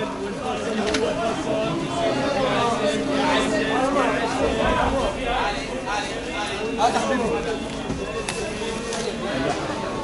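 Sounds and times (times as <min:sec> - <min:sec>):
crowd voices talking: 0:00.0 - 0:10.0.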